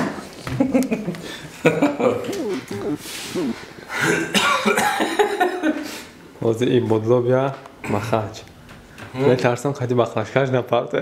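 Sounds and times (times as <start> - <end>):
brief voice sounds: 2.2 - 3.6
person coughing: 2.3 - 5.2.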